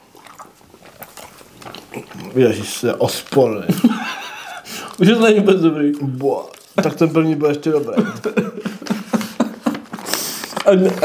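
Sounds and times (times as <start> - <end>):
person chewing candy: 0.0 - 11.0.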